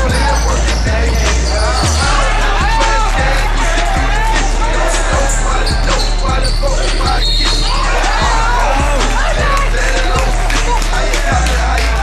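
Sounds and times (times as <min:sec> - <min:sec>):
music with heavy bass: 0:00.0 - 0:12.0
vocal line: 0:00.0 - 0:12.0
kick drum beat: 0:08.1 - 0:12.0.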